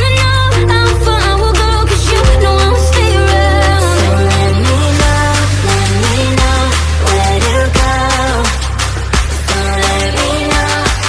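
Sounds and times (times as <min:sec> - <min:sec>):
pop music: 0:00.0 - 0:11.0.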